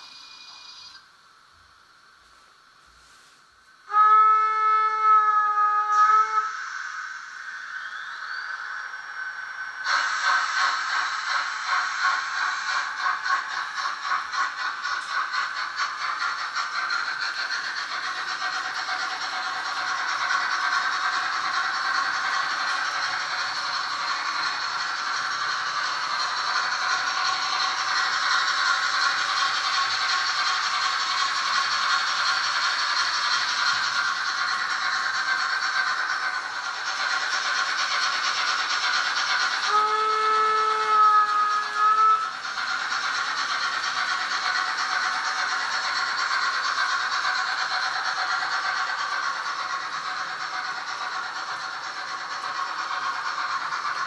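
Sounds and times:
model trains rattling hum: 0.0s - 54.0s
model steam whistle: 3.8s - 7.0s, 39.6s - 42.3s.

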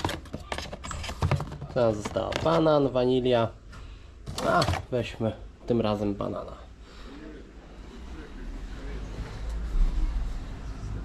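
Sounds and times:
faint indistinct voices: 6.8s - 11.0s.

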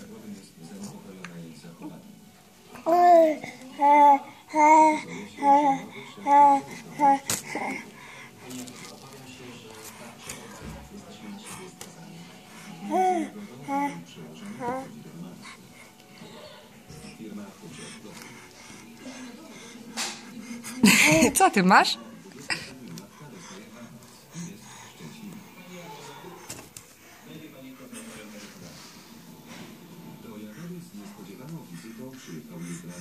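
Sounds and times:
faint television music and voices: 0.0s - 33.0s.

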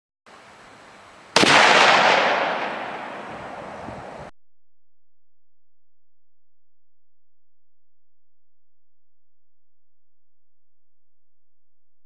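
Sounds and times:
rifle shot: 1.4s - 3.8s
rolling echo: 1.4s - 4.3s.

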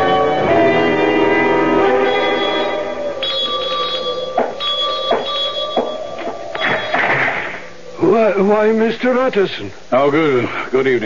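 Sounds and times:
doorbell ringing: 2.0s - 7.0s.

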